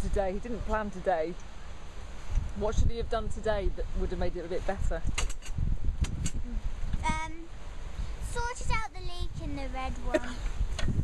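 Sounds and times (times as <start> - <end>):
wind buffeting microphone: 2.0 - 11.0.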